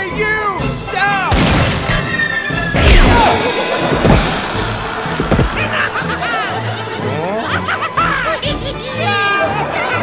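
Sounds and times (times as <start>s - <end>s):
background music: 0.0s - 10.0s
loud crash: 2.7s - 5.9s
thuds: 2.8s - 6.0s.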